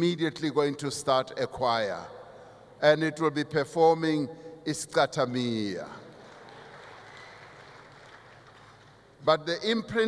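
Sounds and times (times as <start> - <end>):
audience in large hall: 5.4 - 10.0.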